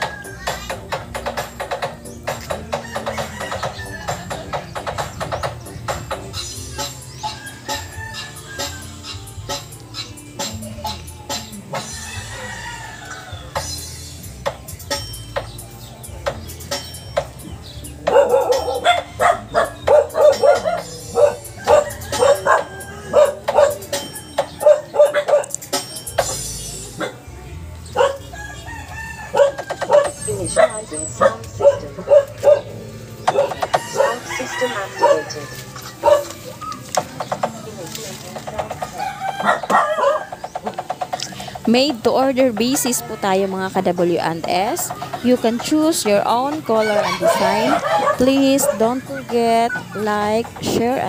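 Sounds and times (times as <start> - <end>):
rooster crowing: 0.0 - 0.6, 2.7 - 4.5, 11.8 - 13.6, 20.2 - 25.1, 28.0 - 36.7, 39.0 - 40.5, 46.7 - 50.0
background music: 0.0 - 51.0
dog barking: 18.0 - 24.0, 24.6 - 25.6, 27.0 - 27.2, 27.9 - 28.3, 29.3 - 34.4, 35.0 - 35.3, 36.0 - 36.4, 39.4 - 40.4, 47.1 - 49.0.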